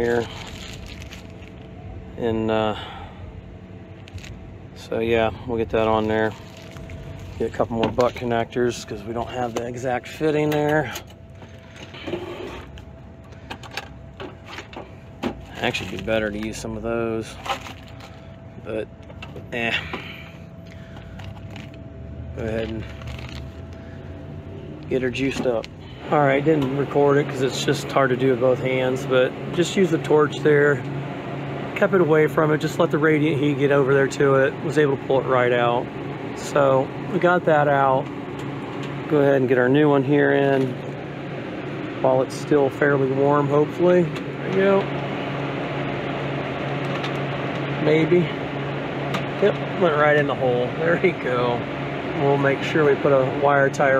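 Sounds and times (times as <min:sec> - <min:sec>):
steady low hum: 0:00.0 - 0:53.9.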